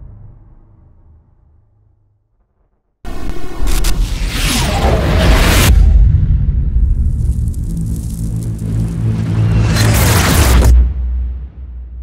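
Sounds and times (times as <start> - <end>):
deep low rumble and drone: 0.0 - 12.0.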